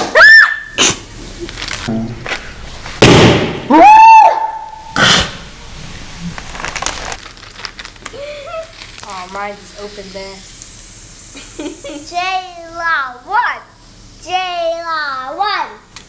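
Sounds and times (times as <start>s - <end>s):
bag bursting: 3.0s - 3.7s, 5.0s - 9.9s.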